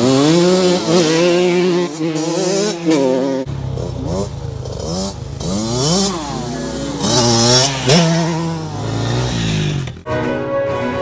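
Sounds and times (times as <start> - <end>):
dirt bike engines revving: 0.0 - 10.1.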